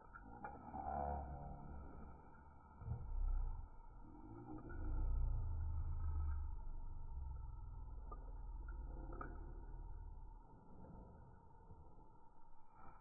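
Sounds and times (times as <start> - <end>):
dog growling low: 2.8 - 10.9.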